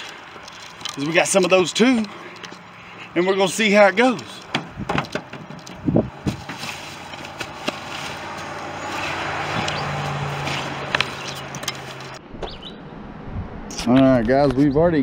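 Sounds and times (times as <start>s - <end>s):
fishing gear knocks and rustles: 0.0s - 2.7s, 4.0s - 12.2s.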